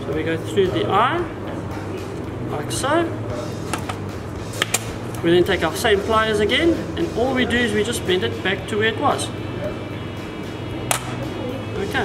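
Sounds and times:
background music: 0:00.0 - 0:12.0
pliers sharp metallic click: 0:10.9 - 0:11.2.

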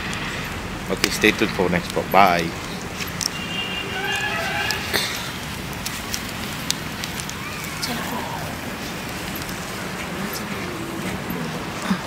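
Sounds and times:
campfire crackling and popping: 0:00.0 - 0:12.0
steady hiss: 0:00.0 - 0:12.0.

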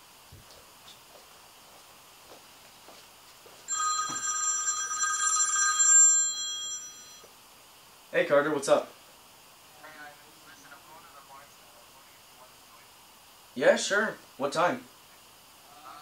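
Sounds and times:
smartphone ringing: 0:03.7 - 0:07.3.

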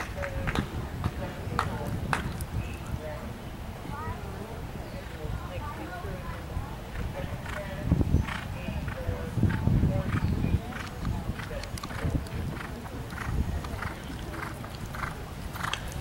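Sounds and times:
horse hooves cantering on sand: 0:06.1 - 0:16.0.

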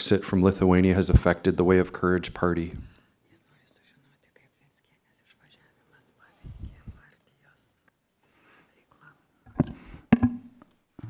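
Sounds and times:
person whispering: 0:02.7 - 0:09.4.

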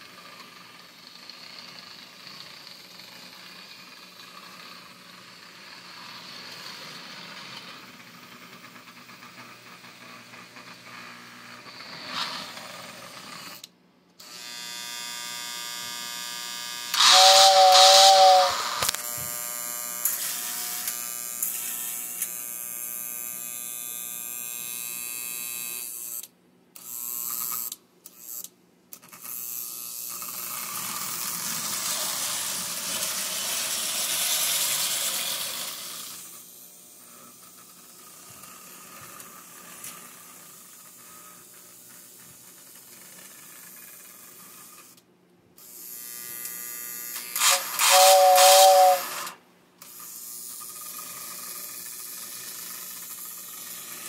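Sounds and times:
toy train motor whining: 0:00.0 - 0:45.0, 0:45.6 - 0:54.0
two-tone train whistle: 0:16.9 - 0:19.0, 0:47.4 - 0:49.4.

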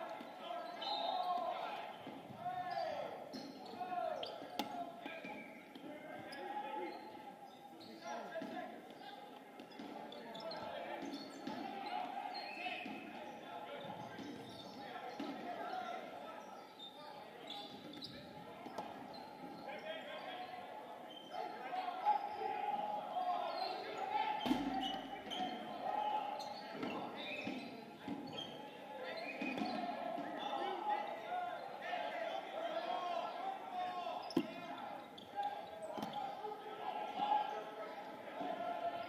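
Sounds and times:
players chattering and calling: 0:00.0 - 0:39.0.

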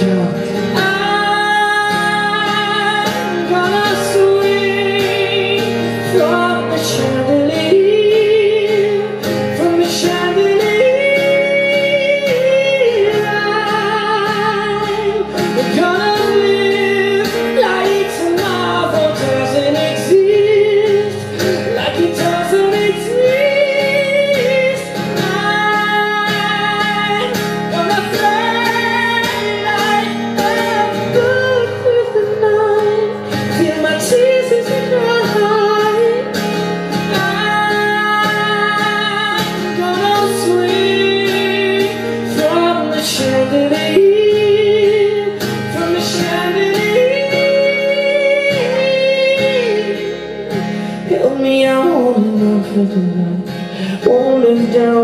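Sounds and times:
strummed acoustic guitar: 0:00.0 - 0:55.0.

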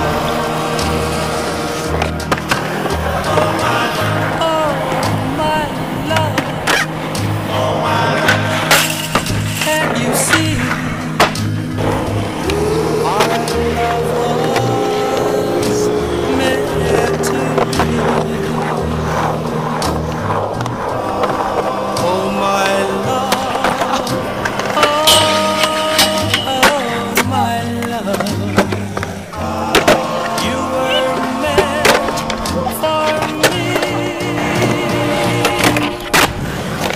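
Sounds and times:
song with bass line: 0:00.0 - 0:36.3
skateboard clacks: 0:00.0 - 0:36.9
skateboard wheels rolling on concrete: 0:00.0 - 0:36.9.

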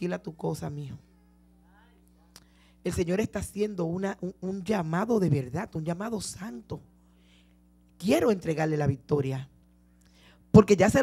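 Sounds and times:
woman speaking over microphone: 0:00.0 - 0:01.1, 0:01.7 - 0:06.8, 0:08.0 - 0:09.5, 0:10.5 - 0:11.0
faint voice in background: 0:01.0 - 0:02.4.

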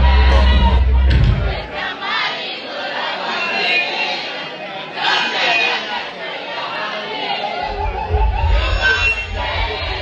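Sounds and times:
deep bass line: 0:00.0 - 0:01.6
party music: 0:00.0 - 0:02.3, 0:07.1 - 0:10.0
crowd chattering and shouting: 0:00.0 - 0:10.0.

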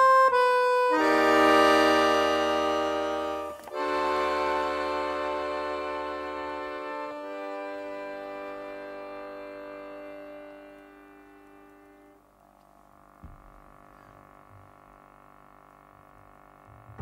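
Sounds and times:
accordion sustained chord: 0:00.0 - 0:17.0
soft low knock: 0:13.2 - 0:13.8
band with double bass: 0:16.7 - 0:17.0.

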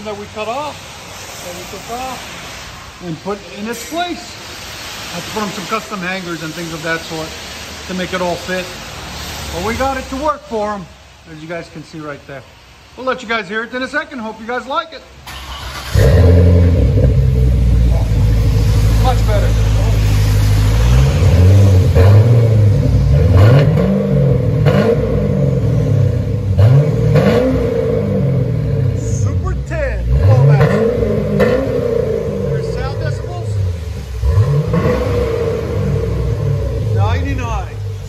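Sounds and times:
car engine idling: 0:15.2 - 0:38.0
car engine starting: 0:15.2 - 0:38.0
car engine revving: 0:15.3 - 0:38.0.

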